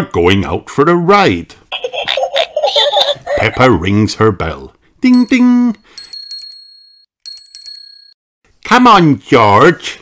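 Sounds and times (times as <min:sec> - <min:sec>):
bicycle bell ringing: 0:05.1 - 0:08.2.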